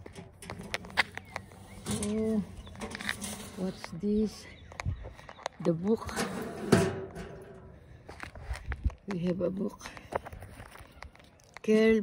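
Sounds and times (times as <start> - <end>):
metal mailbox door shutting: 1.8 - 3.8, 6.1 - 7.8.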